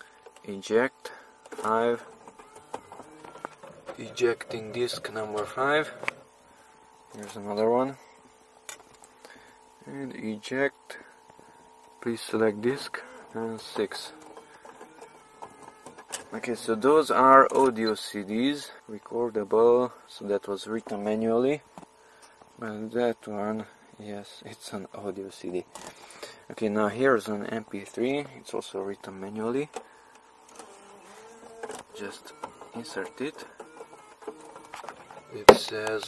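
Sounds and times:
cd changer motor whirring: 0.0 - 36.0.

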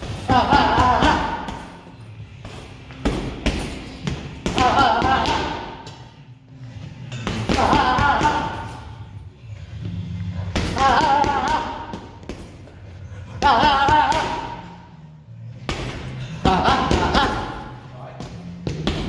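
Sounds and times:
boxing gloves striking mitts: 15.6 - 19.0.

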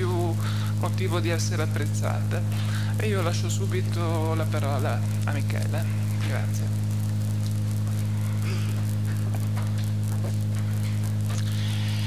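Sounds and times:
electrical mains hum: 0.0 - 12.0
faint hiss: 0.0 - 12.0.

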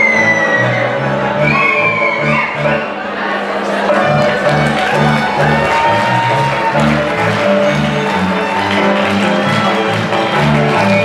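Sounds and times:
bass line: 0.0 - 2.9, 4.0 - 11.0
live folk dance band: 0.0 - 3.3, 3.9 - 11.0.

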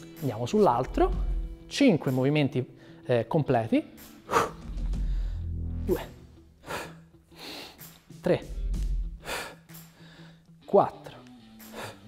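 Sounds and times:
quiet background music: 0.0 - 12.0
man straining breaths: 4.2 - 5.7, 6.6 - 8.1, 9.1 - 10.6, 11.6 - 12.0.

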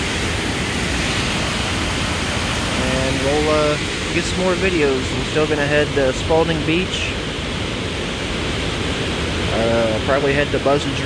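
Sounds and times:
water rushing through dam gates: 0.0 - 11.0.

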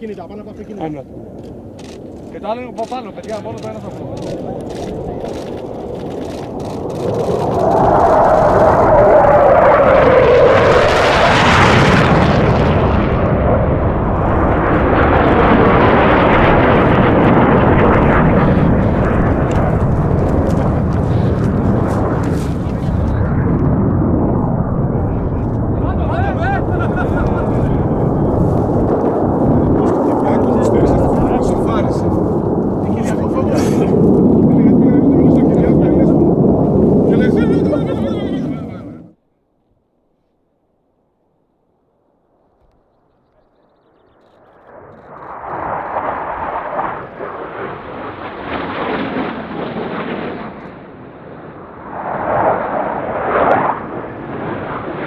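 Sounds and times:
fighter jet engine roar: 0.0 - 39.2, 44.6 - 55.0
jet whine: 0.0 - 39.2, 43.7 - 55.0.

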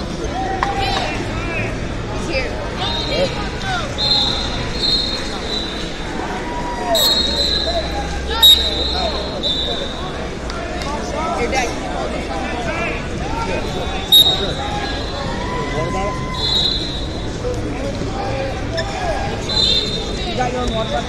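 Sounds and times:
crowd chatter: 0.0 - 21.0
referee whistle blasts: 4.0 - 5.8, 7.0 - 10.0, 14.1 - 15.3, 16.3 - 17.2, 19.5 - 20.2.

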